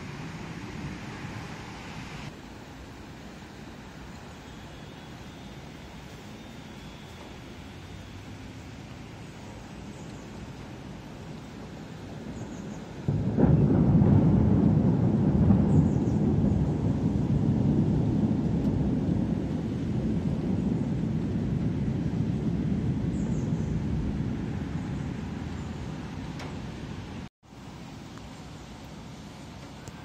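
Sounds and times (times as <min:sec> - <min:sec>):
thunder clap and rumble: 0:00.0 - 0:02.4, 0:08.8 - 0:27.3.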